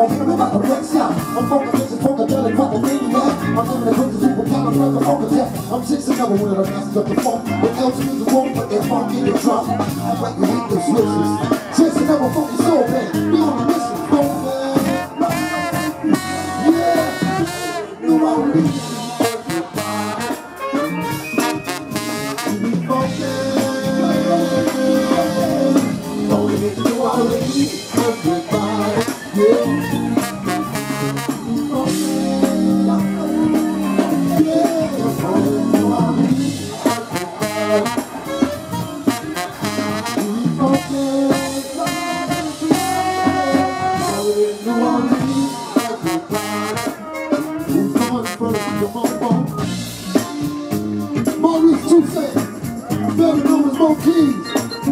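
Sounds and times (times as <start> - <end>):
brass instruments: 0.0 - 54.9
drum kit beats: 0.0 - 54.9
funk band playing: 0.0 - 54.9.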